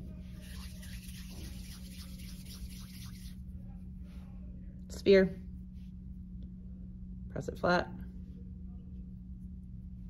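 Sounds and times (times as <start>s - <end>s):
steady low hum: 0.0s - 10.0s
hands rolling clay: 0.2s - 3.4s.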